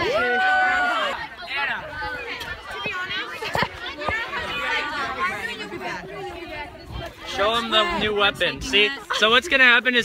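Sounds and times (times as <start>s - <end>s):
young people chattering: 0.0s - 10.0s.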